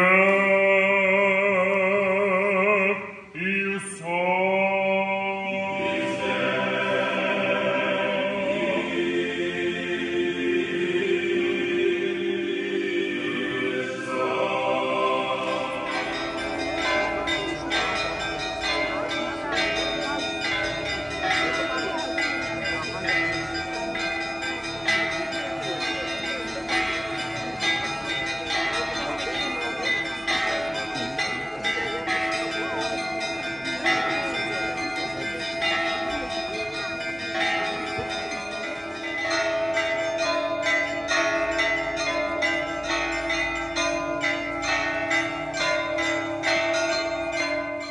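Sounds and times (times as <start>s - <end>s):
church bells pealing: 0.0s - 11.7s, 13.9s - 47.9s.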